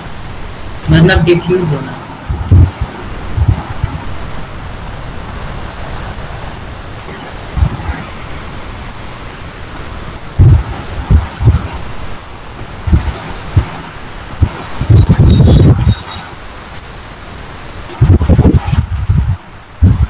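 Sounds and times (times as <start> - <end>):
microphone hiss: 0.0 - 20.0
muffled thumps on microphone: 2.3 - 4.0, 7.6 - 8.0, 10.4 - 11.8, 12.9 - 16.1, 18.0 - 20.0.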